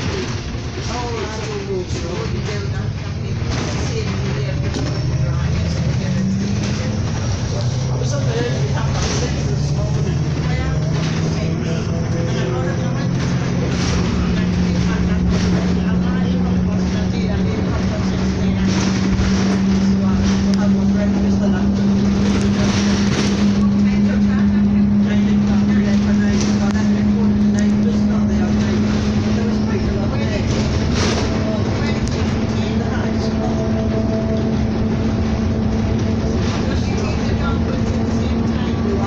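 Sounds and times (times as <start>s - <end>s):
bus engine drone: 0.0s - 39.0s
interior rattles: 0.0s - 39.0s
road noise: 0.0s - 39.0s.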